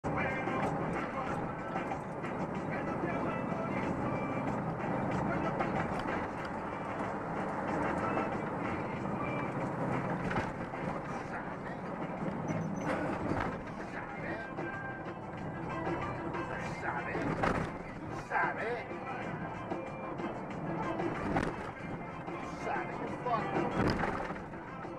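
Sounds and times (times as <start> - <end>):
truck road and engine noise: 0.0 - 24.9.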